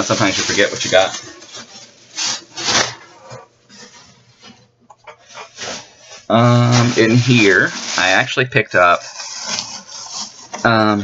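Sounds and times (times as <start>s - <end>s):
shopping bag rustling: 0.0s - 11.0s.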